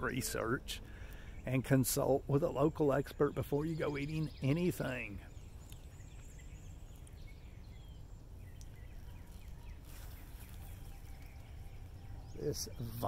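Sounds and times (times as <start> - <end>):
faint bird chirps: 0.0 - 13.0.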